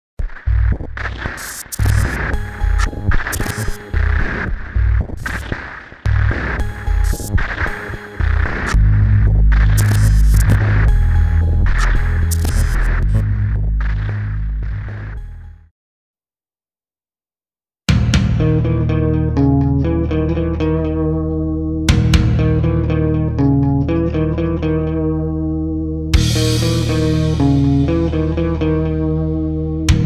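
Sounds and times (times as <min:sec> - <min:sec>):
glitchy static crackles: 0:00.2 - 0:15.6
loud steady low drone: 0:08.2 - 0:15.6
deep pulsing bass throbs: 0:08.2 - 0:15.7.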